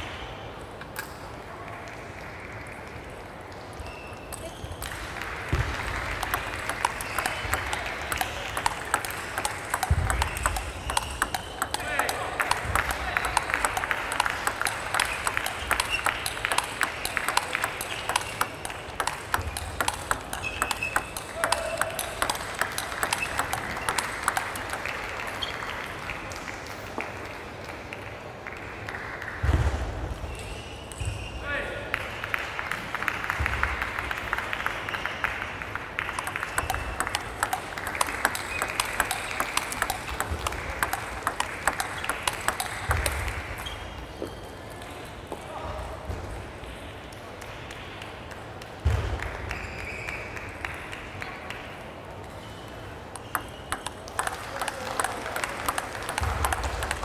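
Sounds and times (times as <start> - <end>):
table tennis balls clicking: 2.9 - 25.5, 35.8 - 44.4, 52.2 - 57.0.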